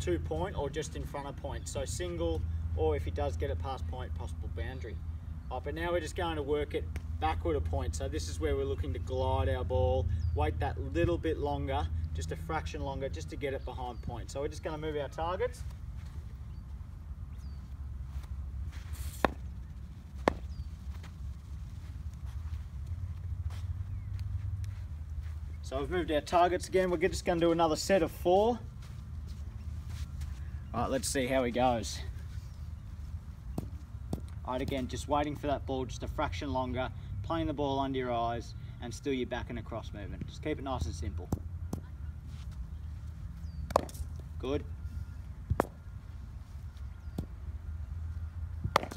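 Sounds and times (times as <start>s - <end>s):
cricket bat striking ball: 20.2s - 20.5s, 43.7s - 44.0s.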